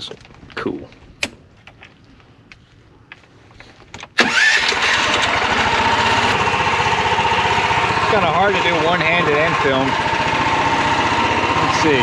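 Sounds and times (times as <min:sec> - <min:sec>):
engine starting and running: 0:04.1 - 0:12.0.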